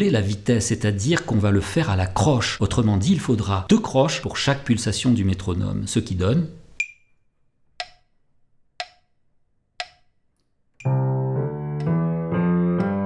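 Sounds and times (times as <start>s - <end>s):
metronome clicking: 6.8s - 7.1s, 7.8s - 8.2s, 8.8s - 9.2s, 9.8s - 12.1s
piano playing a scale: 10.8s - 13.0s.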